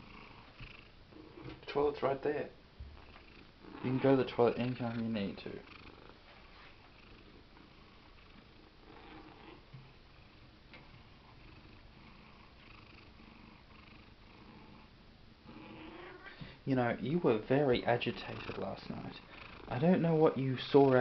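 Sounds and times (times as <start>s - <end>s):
cat purring: 0.0s - 21.0s.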